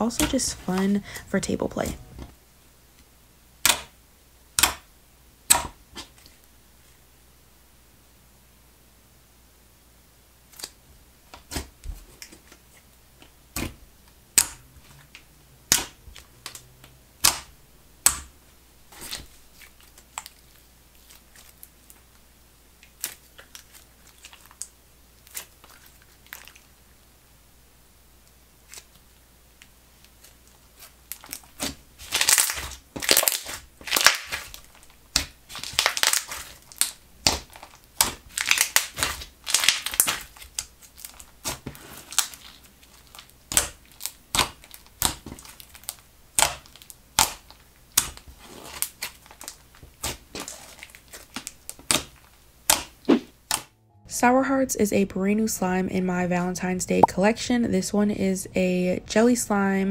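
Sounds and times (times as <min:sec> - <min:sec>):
slime popping and crackling: 0:30.1 - 0:53.7.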